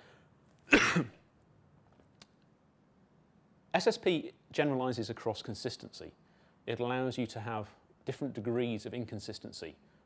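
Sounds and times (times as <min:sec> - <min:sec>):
man coughing: 0:00.7 - 0:01.2.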